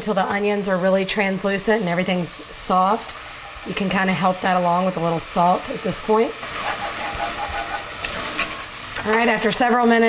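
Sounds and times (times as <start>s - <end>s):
vegetables sizzling in fat: 0.0s - 10.0s.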